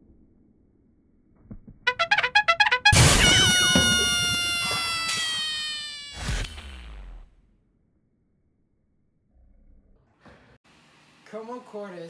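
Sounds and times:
comic brass sound effect: 1.9 - 5.1.

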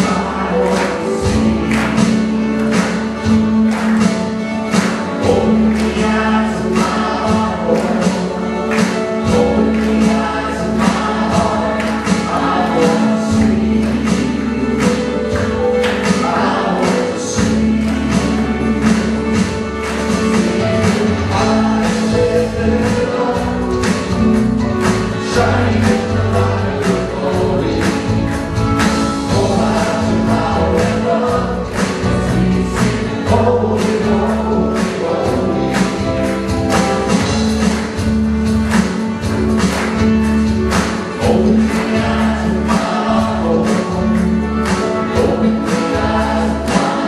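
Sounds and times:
people singing: 0.0 - 47.0
worship band playing: 0.0 - 47.0.

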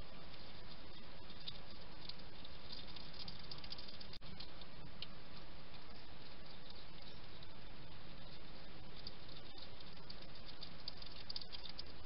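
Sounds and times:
steady hiss: 0.0 - 12.0
animal crunching dry pellets: 0.2 - 12.0.

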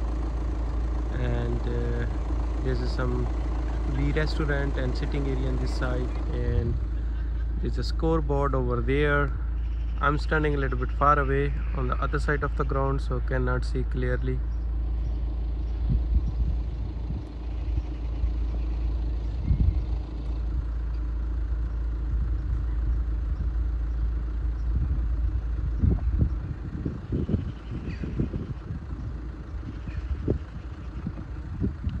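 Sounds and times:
wind buffeting microphone: 15.0 - 20.8, 22.0 - 32.0.

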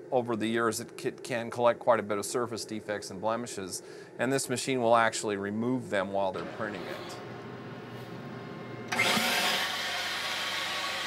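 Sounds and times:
machine hum: 5.8 - 11.0.

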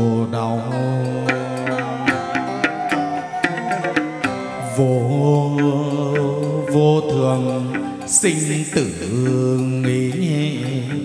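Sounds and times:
low melodic line with bending notes: 0.0 - 11.0
sharp percussion clicks: 0.8 - 11.0.

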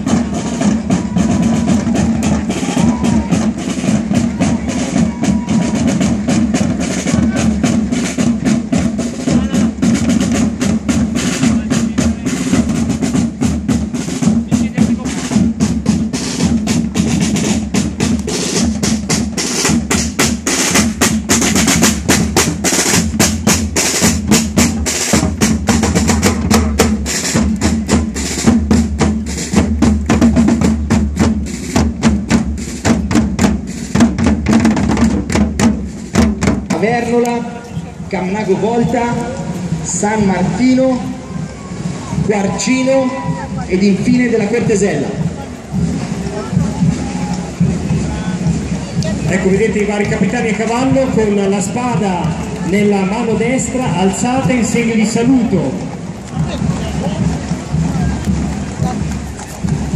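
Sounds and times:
marching drums with rolls: 0.0 - 59.9.

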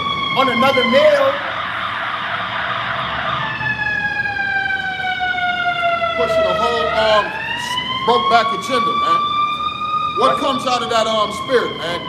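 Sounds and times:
emergency siren wailing: 0.0 - 12.0.

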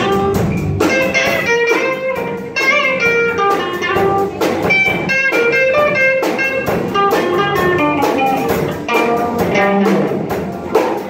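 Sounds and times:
bass guitar: 0.0 - 11.0
distorted electric guitars: 0.0 - 11.0
steady drum beat: 0.0 - 11.0.

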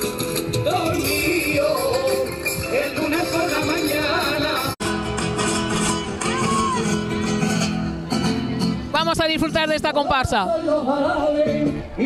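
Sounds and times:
guitar music over loudspeakers: 0.0 - 12.0.

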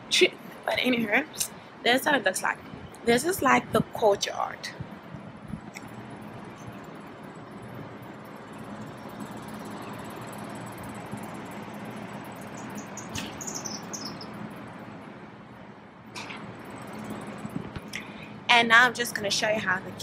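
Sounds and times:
outdoor background hiss: 0.0 - 20.0
small bird chirping: 8.5 - 14.6.

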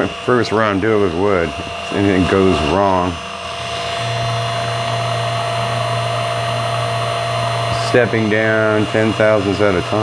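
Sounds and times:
low hum: 0.0 - 10.0
milling machine cutting wood: 0.0 - 10.0.

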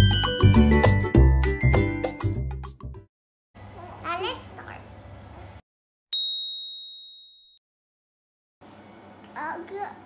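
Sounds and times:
bright bell ding: 6.1 - 7.6.

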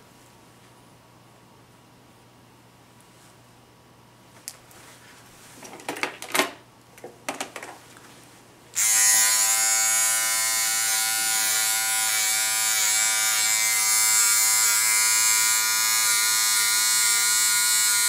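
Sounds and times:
hair clipper buzzing: 8.7 - 18.0.

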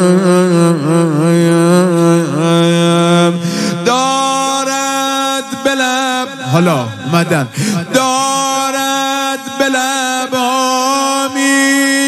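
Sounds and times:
man chanting into a microphone: 0.0 - 12.0.

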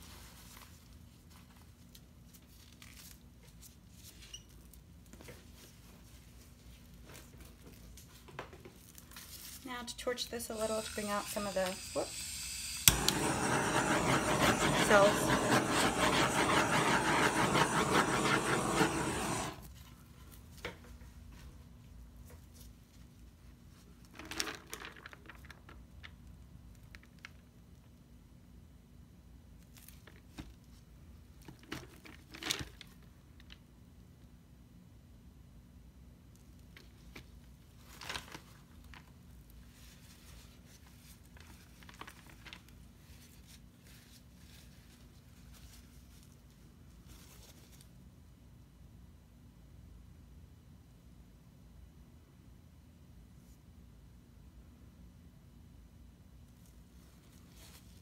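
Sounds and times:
torch flame hissing: 10.5 - 19.7
paper rustling: 39.8 - 46.4.

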